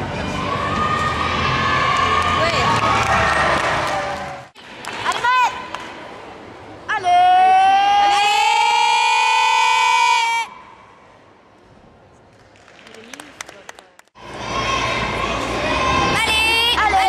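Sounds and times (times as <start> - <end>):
crowd cheering: 0.4 - 4.6.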